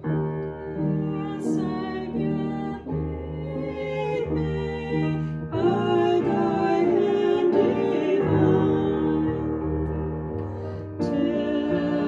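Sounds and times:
hymn on digital piano: 0.0s - 12.0s.

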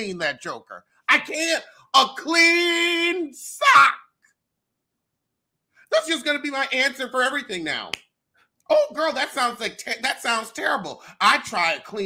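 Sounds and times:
man speaking: 0.0s - 4.1s, 5.9s - 8.0s, 8.7s - 12.0s
man's high exclamation: 1.2s - 4.0s.

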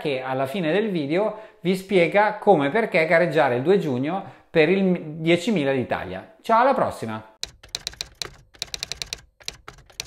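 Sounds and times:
keyboard typing clicks: 7.4s - 10.0s.

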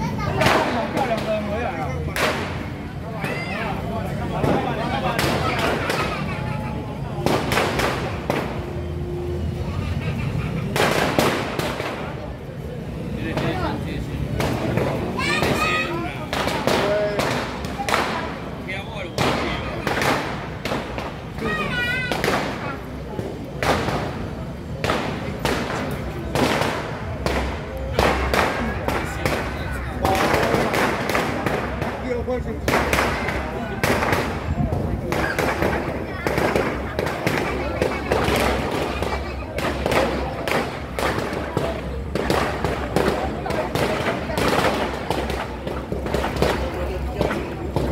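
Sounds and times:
crowd voices: 0.0s - 47.9s
firecracker bangs: 0.1s - 6.3s, 7.0s - 9.4s, 10.7s - 12.3s, 13.1s - 47.9s.

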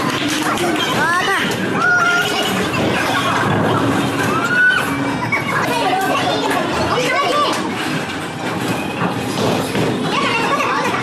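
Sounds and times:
bowling balls rolling: 0.0s - 11.0s.

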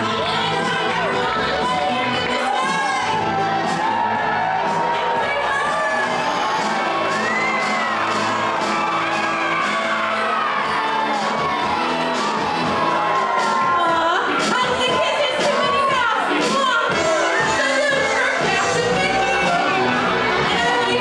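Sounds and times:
crowd cheering and shouting: 0.0s - 21.0s
dance music: 0.0s - 21.0s.

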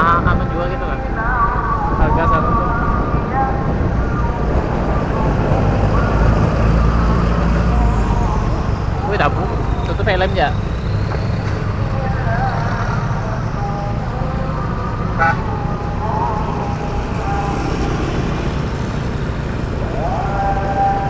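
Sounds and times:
wind rush: 0.0s - 13.6s
motorcycle engine drone: 0.0s - 21.0s
passing traffic: 0.0s - 21.0s.

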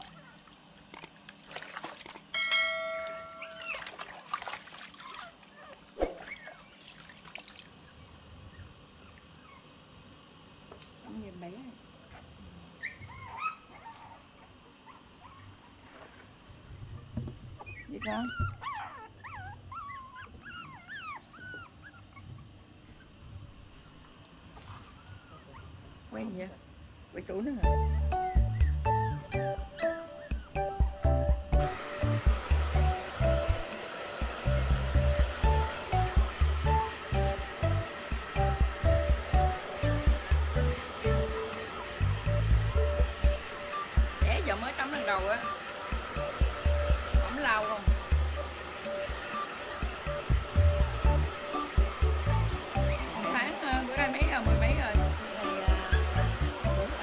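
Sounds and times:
water splashing in a plastic basin: 1.3s - 2.3s, 3.6s - 7.7s
bell-like ding: 2.3s - 3.7s
puppy whining: 3.2s - 4.0s, 5.0s - 6.8s, 7.9s - 9.8s, 12.1s - 15.9s, 16.8s - 26.0s, 27.7s - 30.9s, 52.8s - 53.2s.

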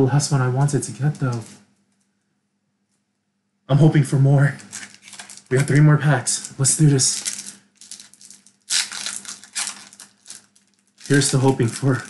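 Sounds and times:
foil wrapper crinkling: 4.6s - 12.0s.

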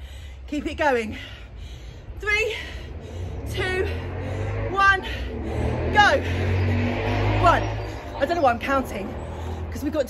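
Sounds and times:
low rumble: 1.2s - 10.0s.

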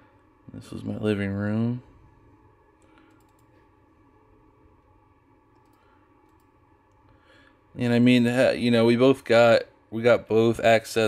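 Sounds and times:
low hum: 0.0s - 11.0s
computer mouse clicks: 2.8s - 3.6s, 5.5s - 7.0s.

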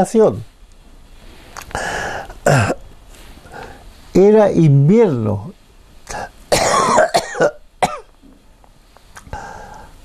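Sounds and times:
man coughing: 1.8s - 2.8s, 6.1s - 8.1s.

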